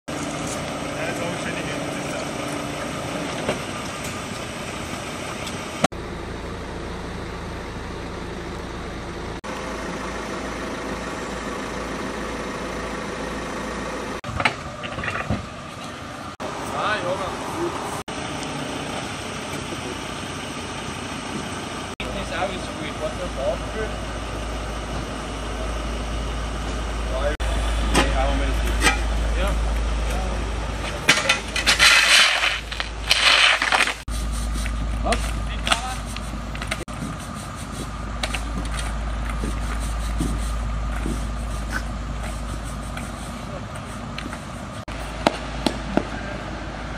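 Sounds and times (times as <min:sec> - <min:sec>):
vehicle engine idling: 0:00.1 - 0:33.2, 0:34.0 - 0:46.9
push brooms sweeping wet asphalt: 0:30.8 - 0:45.1.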